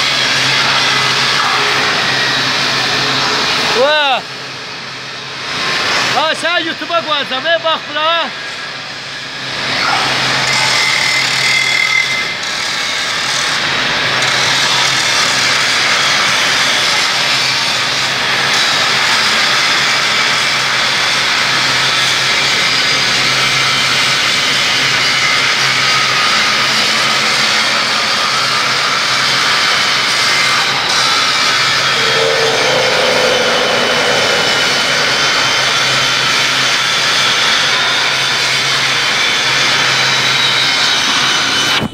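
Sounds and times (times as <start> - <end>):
angle grinder grinding steel: 28.5 - 37.0.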